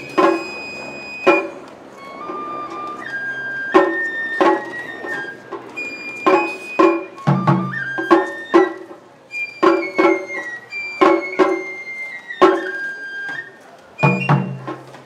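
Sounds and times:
taiko drum strikes: 0:00.0 - 0:01.6, 0:03.7 - 0:04.8, 0:06.2 - 0:09.0, 0:11.0 - 0:11.7, 0:14.0 - 0:15.0
bamboo flute melody: 0:00.0 - 0:15.0.

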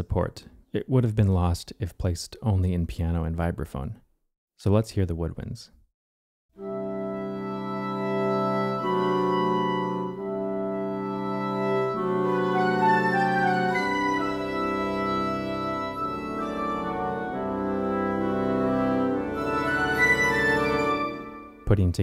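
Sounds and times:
piccolo and upper winds figure: 0:06.6 - 0:21.7
woodwind section sustained chords: 0:06.6 - 0:21.7.

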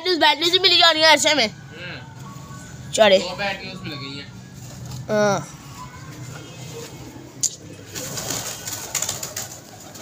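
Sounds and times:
pigeon wings fluttering: 0:07.9 - 0:10.0.

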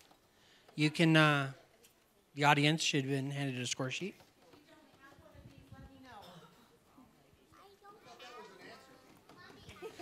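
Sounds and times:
faint murmur of voices: 0:03.8 - 0:10.0.

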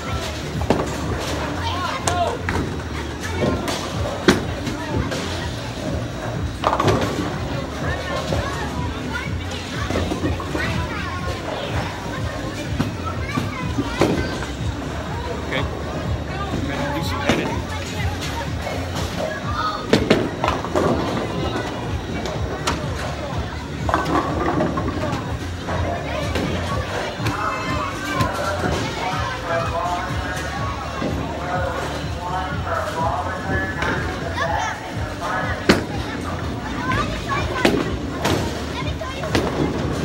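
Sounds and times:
voices: 0:00.0 - 0:40.0.

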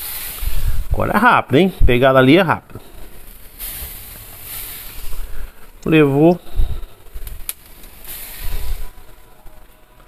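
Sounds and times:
meat sizzling on a grill: 0:00.0 - 0:09.4.

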